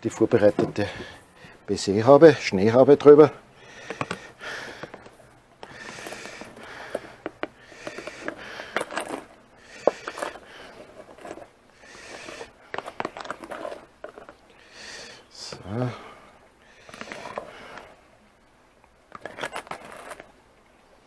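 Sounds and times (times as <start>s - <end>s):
utensil scraping meringue: 5.7s - 14.4s.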